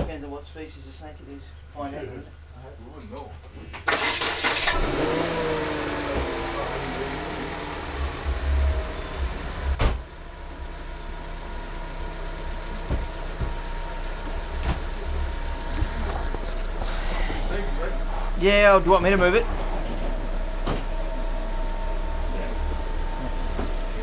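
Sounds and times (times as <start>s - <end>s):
steady low rumble: 4.8s - 24.0s.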